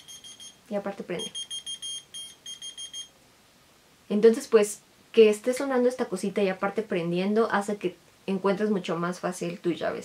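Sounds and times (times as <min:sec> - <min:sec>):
key finder beeping: 0:01.2 - 0:03.1.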